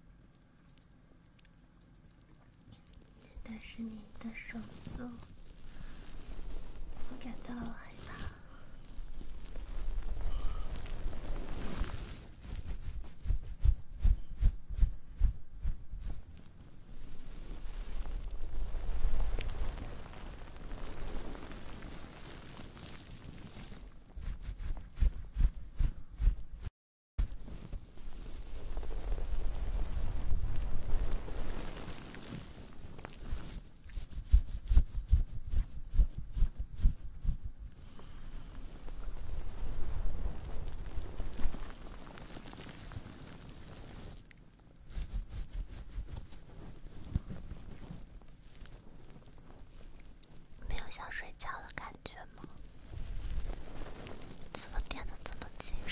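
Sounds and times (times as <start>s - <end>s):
wet sponge squishing: 2.8s - 50.6s, 52.5s - 55.6s
soft low thuds: 12.5s - 16.3s.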